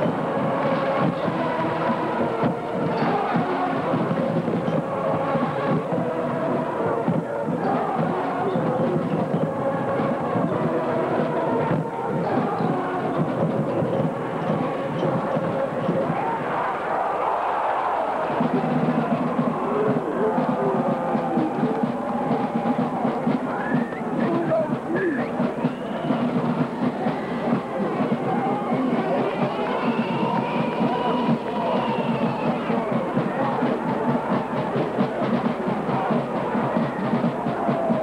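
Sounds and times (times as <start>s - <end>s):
crowd voices: 0.0s - 38.0s
rhythmic marching drum beat: 0.0s - 38.0s.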